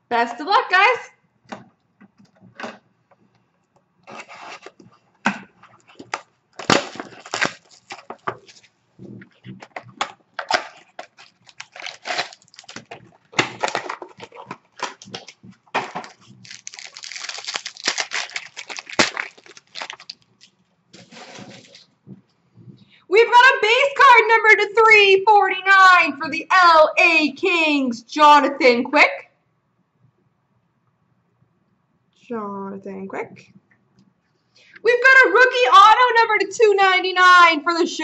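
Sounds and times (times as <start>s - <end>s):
shrink wrap crinkling and tearing: 5.7s - 8.7s, 9.4s - 21.9s.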